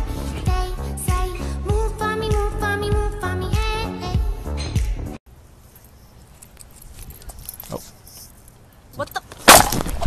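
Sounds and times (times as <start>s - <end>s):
faint outdoor background noise: 5.3s - 10.0s
rustling: 5.4s - 10.0s.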